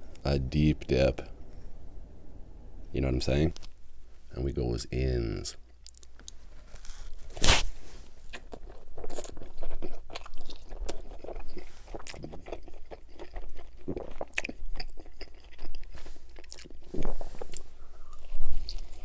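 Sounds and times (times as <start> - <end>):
crust crunching: 5.9 - 14.5
man chewing: 8.2 - 19.0.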